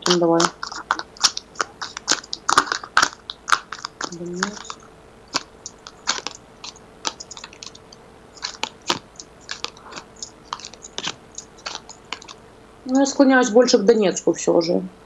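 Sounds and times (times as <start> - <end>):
cards shuffling and snapping: 0.0 - 12.4.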